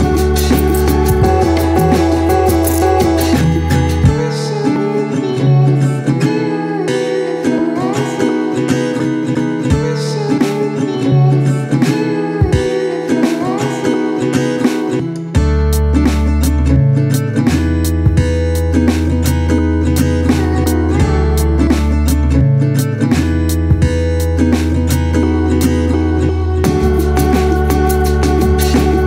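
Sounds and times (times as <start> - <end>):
deep bass: 0.0 - 4.3, 15.4 - 29.0
guitar-led background music: 0.0 - 29.0.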